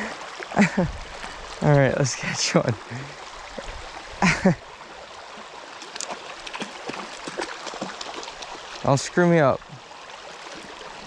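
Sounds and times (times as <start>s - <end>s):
creek running: 0.0s - 11.0s.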